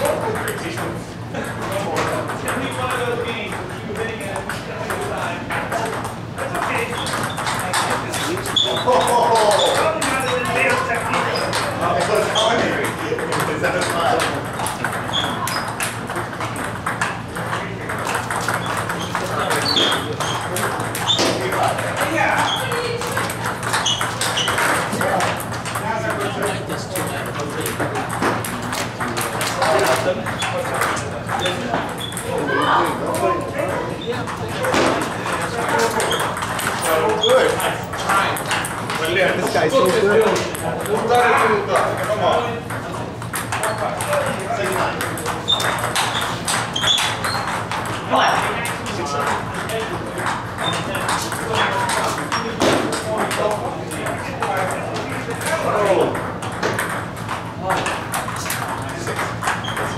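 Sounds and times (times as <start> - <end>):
table tennis balls clicking: 0.0 - 59.9
voices chattering: 0.0 - 59.9.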